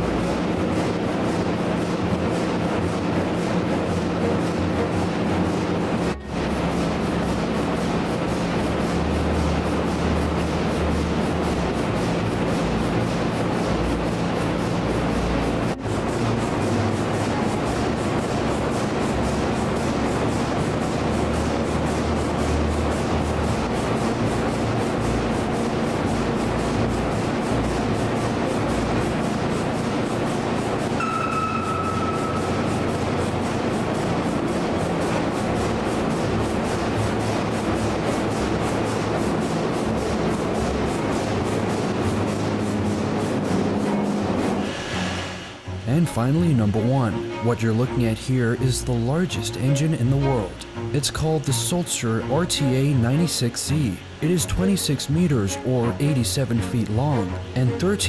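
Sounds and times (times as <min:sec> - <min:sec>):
large diesel engine running: 0:00.0 - 0:58.0
short whistle-like tone: 0:31.0 - 0:32.5.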